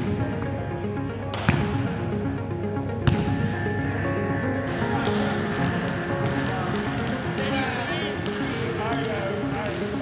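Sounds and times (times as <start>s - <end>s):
background music: 0.0s - 10.0s
basketball bouncing on floor: 3.0s - 3.2s.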